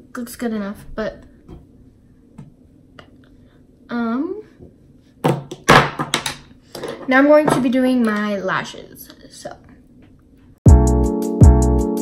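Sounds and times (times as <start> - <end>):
items knocking on hard surface: 5.2 - 7.8.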